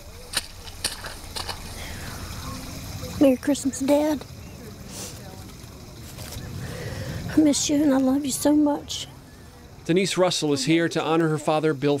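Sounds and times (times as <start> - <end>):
distant voices: 0.0 - 12.0
low steady rumble: 0.0 - 12.0
faint rustles and clicks: 4.9 - 6.6.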